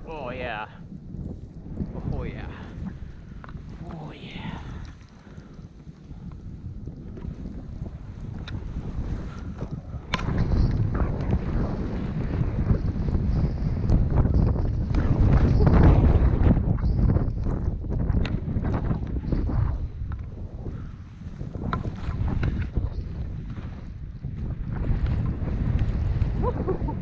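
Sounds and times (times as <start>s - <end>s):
wind over microphone: 0.0s - 27.0s.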